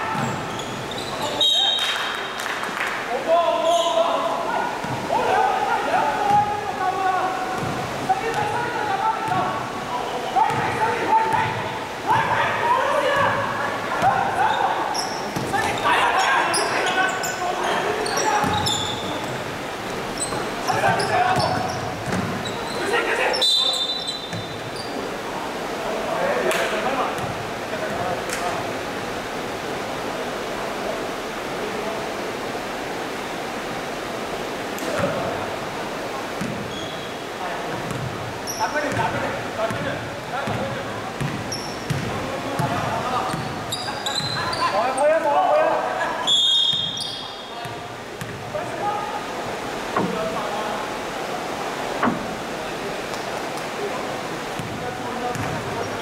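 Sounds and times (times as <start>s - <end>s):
shoe squeaks: 0.1s - 1.9s, 3.6s - 4.0s, 14.5s - 19.3s, 20.2s - 25.0s, 36.7s - 37.2s, 38.4s - 39.0s, 41.5s - 42.0s, 43.2s - 45.1s, 46.3s - 47.5s
basketball bouncing: 20.8s - 22.4s, 36.4s - 36.6s, 37.8s - 38.1s, 40.4s - 43.6s, 54.6s - 55.6s.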